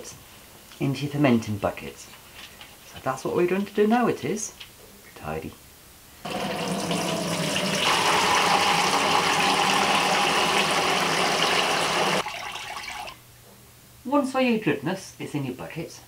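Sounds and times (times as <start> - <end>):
liquid pouring and splashing: 6.3 - 13.2.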